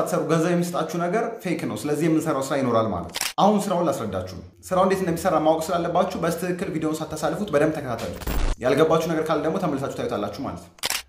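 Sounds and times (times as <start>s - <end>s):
man speaking: 0.0s - 10.7s.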